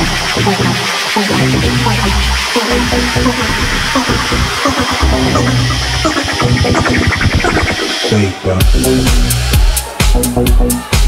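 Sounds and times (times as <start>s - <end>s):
electronic dance music: 0.0s - 11.0s
rapid drum hits: 8.6s - 11.0s.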